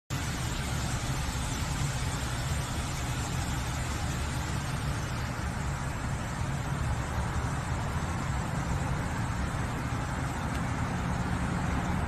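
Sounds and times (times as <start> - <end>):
even hiss: 0.1 - 12.0
low machine rumble: 0.1 - 12.0.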